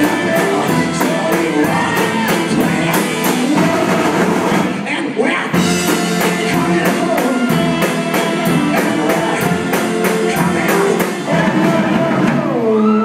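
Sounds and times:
drum kit with cymbal beat: 0.0s - 4.9s, 5.5s - 12.7s
live rock band playing: 0.0s - 12.9s
electric guitar: 5.5s - 13.0s
accordion: 5.7s - 11.5s.

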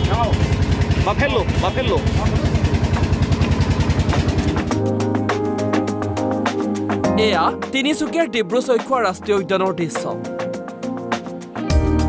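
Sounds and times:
boat engine chugging: 0.0s - 4.9s.

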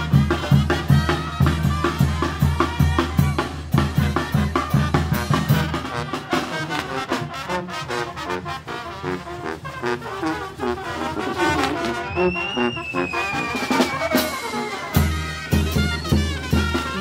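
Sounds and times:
bass and snare drum strokes: 0.0s - 8.0s, 9.8s - 17.0s
marching brass band playing: 0.0s - 17.0s.

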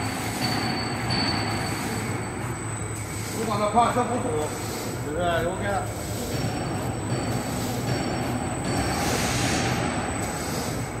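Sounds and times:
machine mechanical hum: 0.0s - 11.0s
thin high whine: 0.0s - 11.0s.

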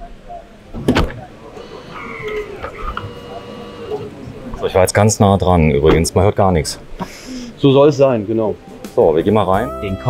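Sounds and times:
door latching with click: 0.7s - 1.3s.

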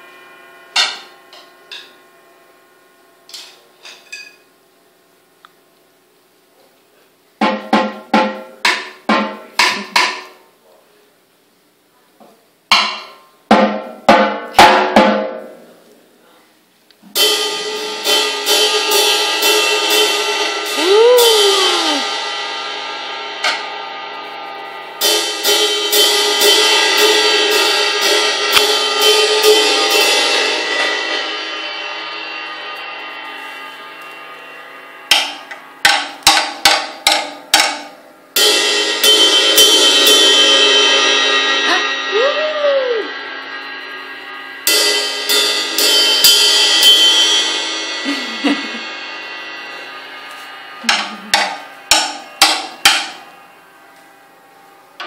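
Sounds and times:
cymbal crashes: 0.0s - 3.4s, 17.2s - 55.0s
drum hits: 7.4s - 10.4s, 12.7s - 15.6s, 17.2s - 22.3s, 35.0s - 53.5s.

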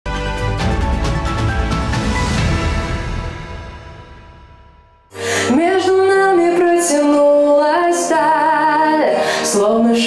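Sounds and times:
woman singing with vibrato: 5.2s - 10.0s.

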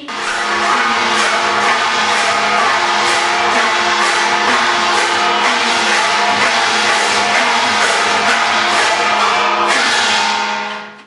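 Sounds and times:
cymbals crashing: 0.0s - 11.0s
gong and drum music: 0.0s - 11.0s
steady drumming: 0.0s - 11.0s.

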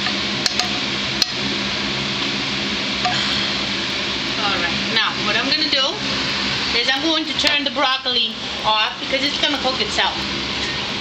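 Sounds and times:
mechanical hum and hiss: 0.0s - 11.0s.

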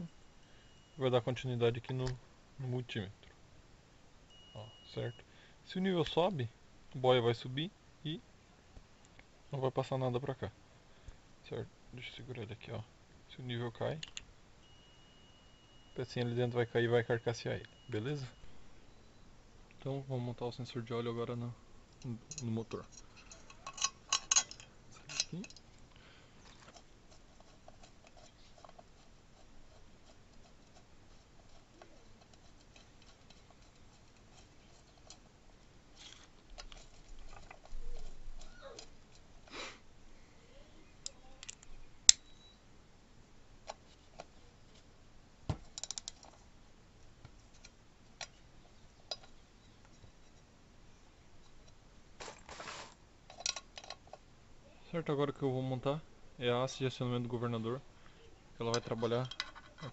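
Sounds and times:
metallic clicks and taps of tools: 14.0s - 14.3s, 41.0s - 42.2s, 45.7s - 46.4s, 49.0s - 50.0s, 53.3s - 54.2s, 58.7s - 59.9s.

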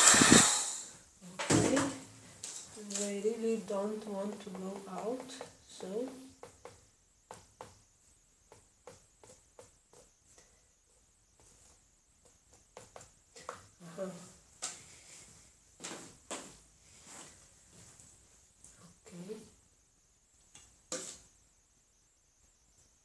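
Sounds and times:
faint irregular clicks and taps: 4.1s - 7.8s, 8.5s - 10.6s, 11.4s - 13.8s.

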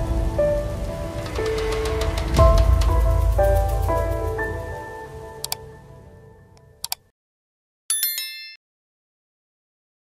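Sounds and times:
sharp clicks: 6.8s - 7.1s
bright high-pitched chime: 7.9s - 8.6s
jingle music: 7.9s - 8.6s.

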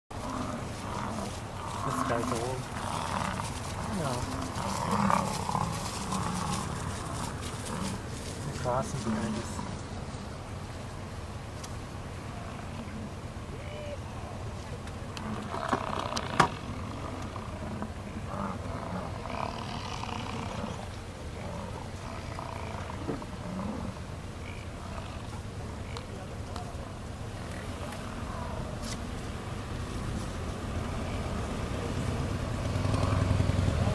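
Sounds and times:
bison bellowing: 0.1s - 10.0s, 15.2s - 33.9s
steady low rumble: 0.1s - 33.9s.

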